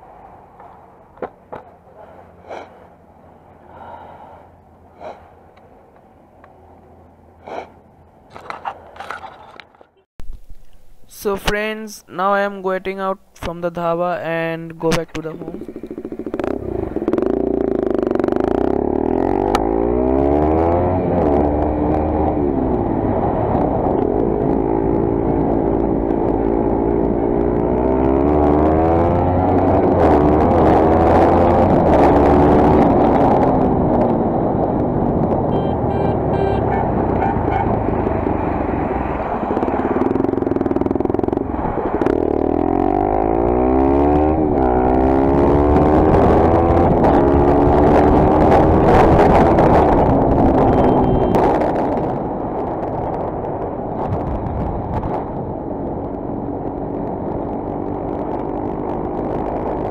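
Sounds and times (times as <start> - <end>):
road and wind noise: 0.0 - 59.9
motorcycle engine accelerating: 15.3 - 59.9.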